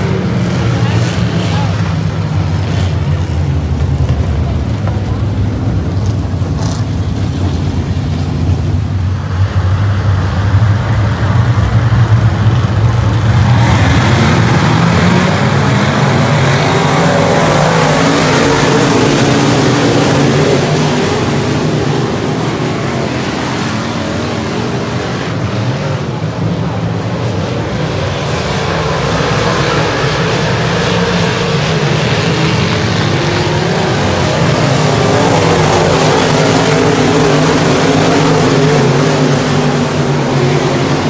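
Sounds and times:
race car engines roaring: 0:00.0 - 0:41.0.

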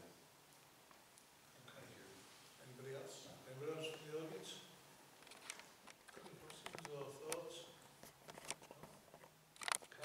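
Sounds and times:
sharp clicks or rustles: 0:05.2 - 0:07.4, 0:08.2 - 0:10.0.

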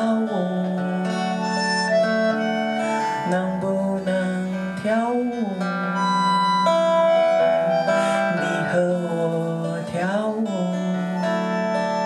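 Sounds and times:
strummed acoustic guitar: 0:00.0 - 0:12.0.

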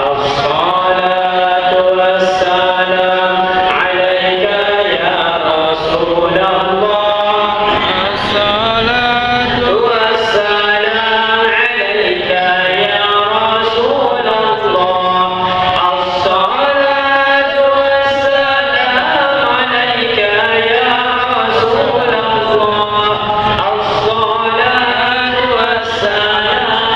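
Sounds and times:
voices chanting together: 0:00.0 - 0:26.9.

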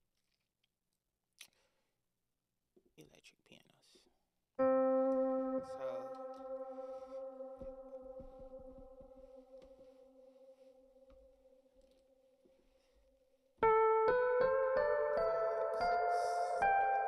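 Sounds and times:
electric piano chord: 0:04.6 - 0:10.0, 0:13.6 - 0:17.0
rising run of piano notes: 0:04.6 - 0:10.0.

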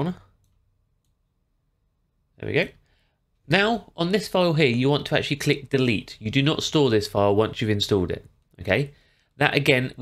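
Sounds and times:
man speaking: 0:00.0 - 0:00.4, 0:02.3 - 0:10.0.

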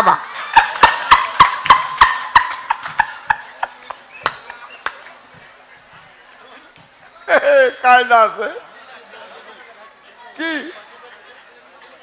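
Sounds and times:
man laughing into microphone: 0:00.0 - 0:04.8, 0:07.3 - 0:07.8.

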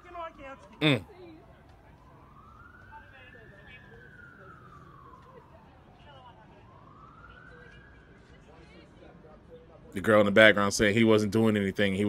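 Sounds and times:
faint siren wailing: 0:00.0 - 0:09.8.

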